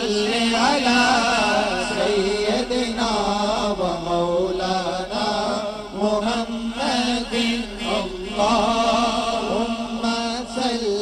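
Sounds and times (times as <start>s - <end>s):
men singing a melody: 0.0s - 11.0s.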